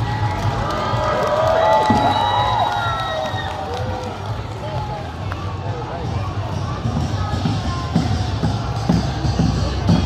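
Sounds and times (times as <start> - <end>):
crowd calling out and cheering: 0.0 - 10.0
parade music with low beat: 0.0 - 10.0.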